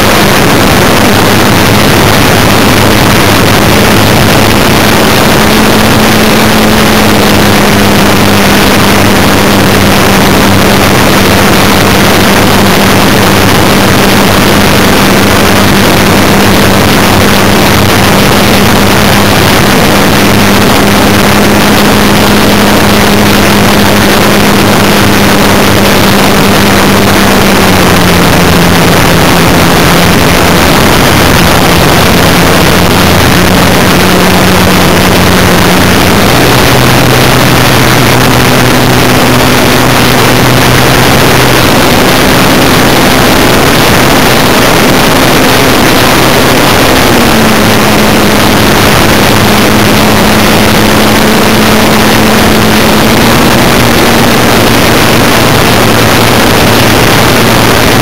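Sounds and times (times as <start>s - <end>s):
model plane motor droning: 0.0s - 58.0s.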